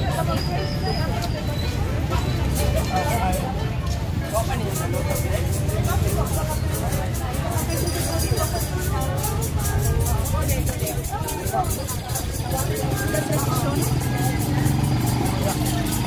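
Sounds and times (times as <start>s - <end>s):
chatter of many voices: 0.0s - 16.0s.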